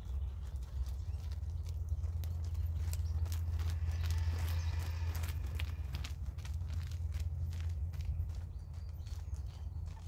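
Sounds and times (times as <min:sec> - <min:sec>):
horse hoofbeats trotting: 0:00.0 - 0:10.0.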